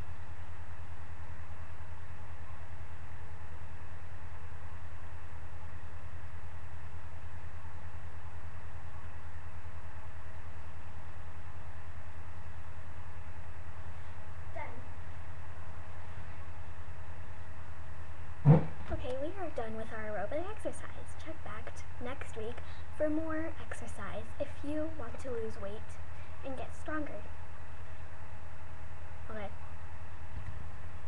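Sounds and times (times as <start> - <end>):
low background hum: 0.0 - 31.0
loud thump: 18.4 - 18.8.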